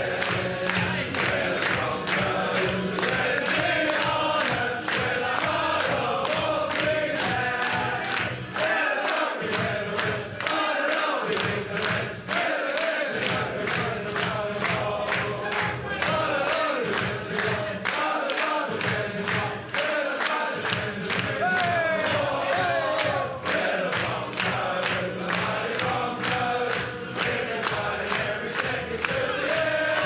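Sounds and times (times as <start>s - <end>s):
men singing in group chorus: 0.0s - 30.0s.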